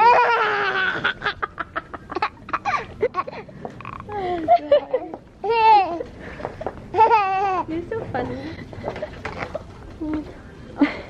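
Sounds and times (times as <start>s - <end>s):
person laughing in bursts: 0.4s - 5.2s.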